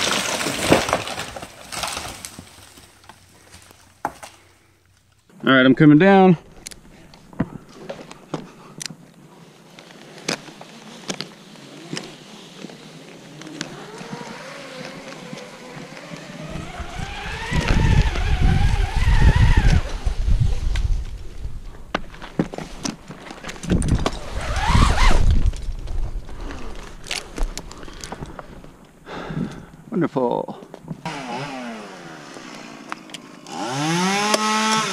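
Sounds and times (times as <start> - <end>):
rope rumbling and rubbing: 9.4 - 29.0
rope whining through friction device: 9.8 - 21.4, 22.5 - 28.5.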